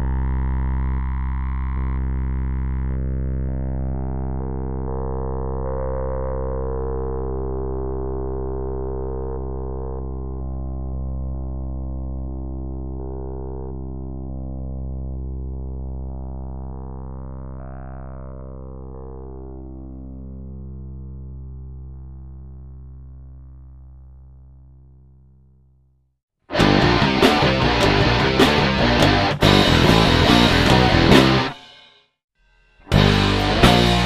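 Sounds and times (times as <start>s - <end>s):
sweeping synthesizer tone: 0.0s - 24.3s
low synthesizer drone: 0.0s - 25.6s.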